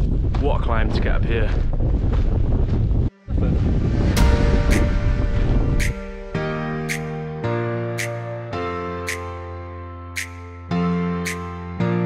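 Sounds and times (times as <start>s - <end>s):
wind buffeting microphone: 0.0s - 5.8s
background music: 3.1s - 12.0s
sharp percussive hits: 4.2s - 7.3s, 8.0s - 8.2s, 9.1s - 9.4s, 10.2s - 10.6s, 11.2s - 11.5s.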